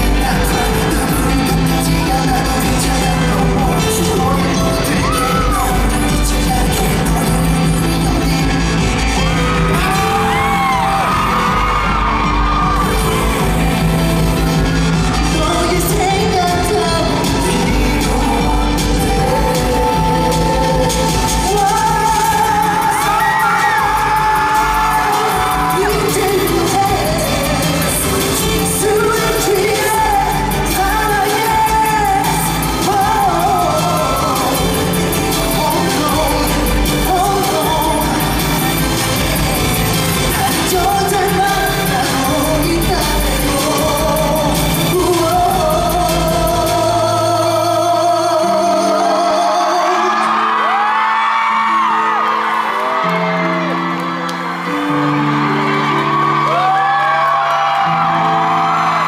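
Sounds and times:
audience screaming: 0.0 - 45.7, 48.4 - 59.0
man singing long notes: 0.0 - 51.2
live pop concert music: 0.0 - 59.0.

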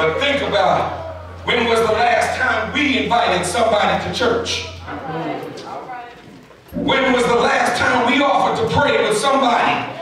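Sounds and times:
man preaching into a microphone: 0.0 - 4.8, 6.7 - 10.0.

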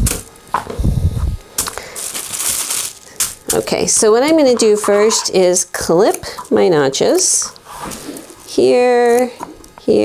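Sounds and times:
tissue paper rustling and crinkling: 1.6 - 5.4.

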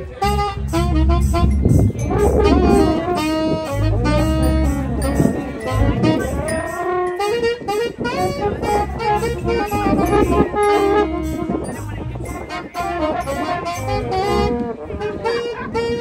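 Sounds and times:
bass: 0.0 - 16.0
brass horns: 0.0 - 16.0
saxophone: 0.0 - 16.0.

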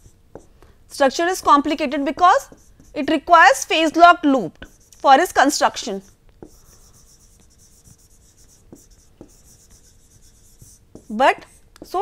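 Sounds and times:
faint steady hum: 0.0 - 12.0
stylus scratching on pen tablet: 1.4 - 4.0, 4.6 - 12.0.

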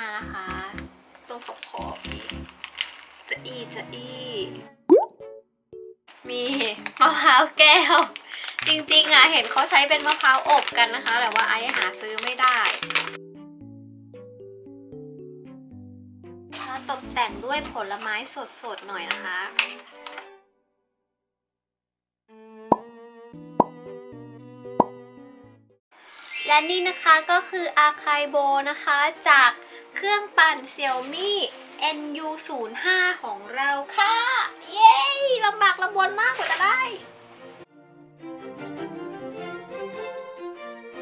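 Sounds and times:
light background music: 0.0 - 20.5, 26.4 - 41.0
pop sound effects: 1.8 - 2.6, 4.9 - 5.3, 22.7 - 22.9, 23.6 - 23.8, 24.8 - 25.0
cartoon bloop rising in pitch: 4.9 - 5.2, 26.2 - 27.0.

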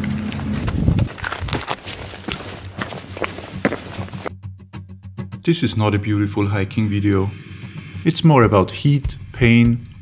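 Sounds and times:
footsteps on gravel: 0.0 - 4.3.

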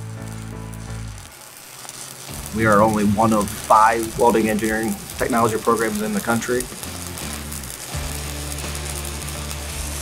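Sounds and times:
welder engine humming and ticking: 0.0 - 10.0.

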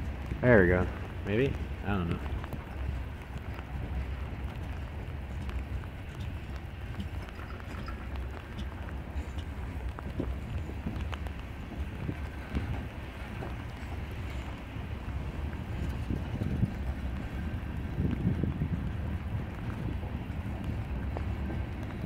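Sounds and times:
steel wheels rumbling on rail: 0.0 - 22.0
wheels clicking and clunking: 0.0 - 22.0.

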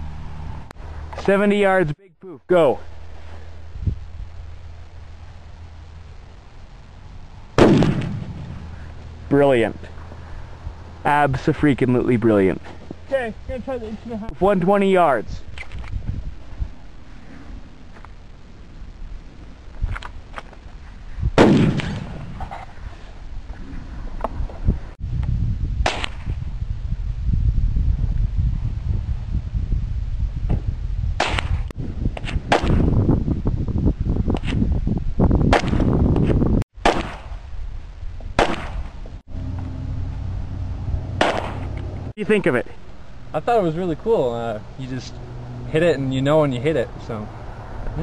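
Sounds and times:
low rumble: 2.8 - 11.6, 37.4 - 43.5
rifle shots: 7.6 - 8.7, 21.4 - 22.4, 36.8 - 37.4, 38.4 - 38.9, 41.2 - 41.7.

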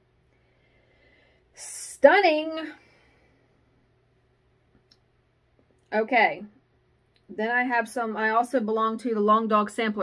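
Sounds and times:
woman's voice: 1.6 - 3.0, 5.9 - 6.6, 7.3 - 10.0.

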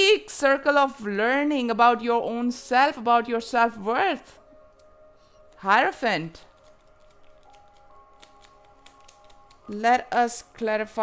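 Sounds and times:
soft background music: 0.0 - 11.0
cards being shuffled: 6.5 - 9.8.

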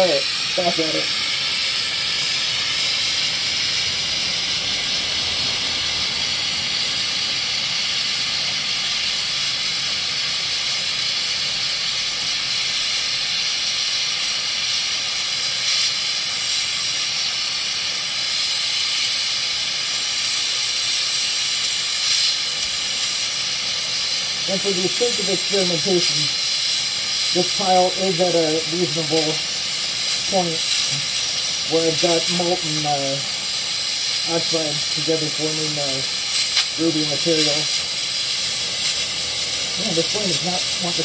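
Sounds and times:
torch flame hissing: 0.0 - 41.0.

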